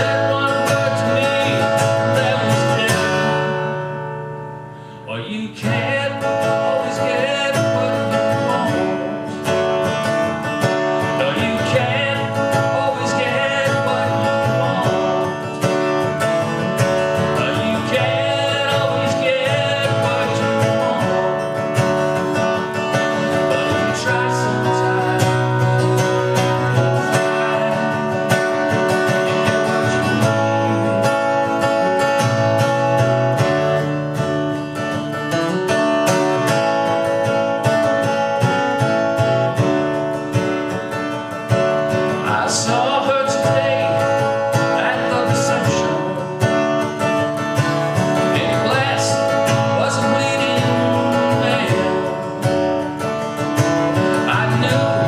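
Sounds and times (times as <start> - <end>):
man singing: 0.0 - 3.9, 5.0 - 33.0, 40.1 - 55.0
acoustic guitar strumming: 0.0 - 55.0.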